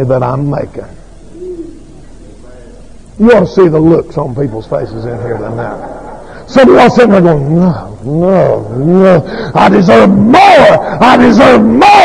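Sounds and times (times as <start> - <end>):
low tape hum: 0.0 - 12.0.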